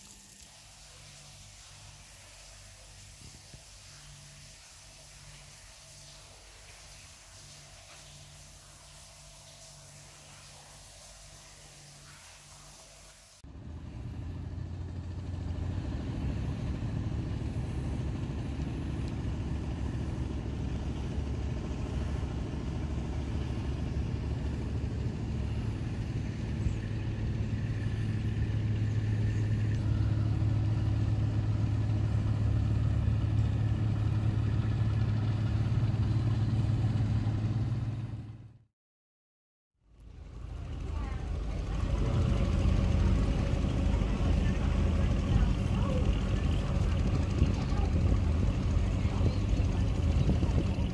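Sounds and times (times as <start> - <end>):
boat engine humming: 0.0 - 38.6, 39.9 - 50.9.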